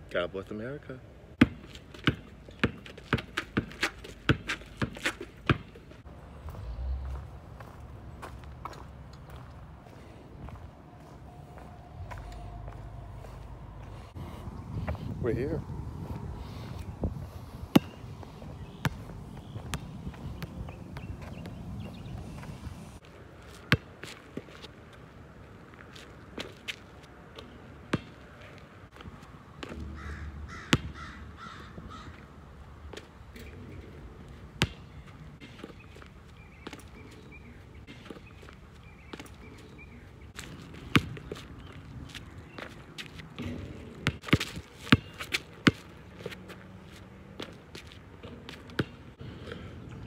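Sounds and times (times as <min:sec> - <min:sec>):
basketball bouncing on hard court: 0:01.4 - 0:05.8, 0:17.7 - 0:18.0, 0:30.7 - 0:31.0, 0:40.4 - 0:41.4, 0:43.4 - 0:45.9, 0:48.2 - 0:49.0
sneaker footsteps on asphalt: 0:01.4 - 0:32.2, 0:34.6 - 0:49.0
bird harsh calls: 0:29.8 - 0:32.3.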